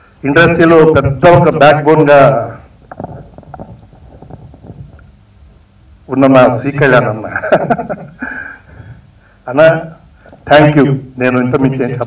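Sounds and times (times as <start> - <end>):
microphone crackles: 0.0 - 6.1
low steady hum: 0.0 - 12.0.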